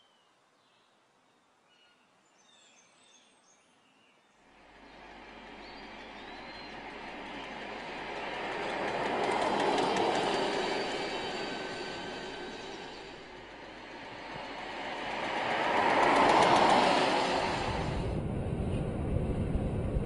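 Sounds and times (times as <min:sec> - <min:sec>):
vehicle passing by: 0:13.2 - 0:19.1.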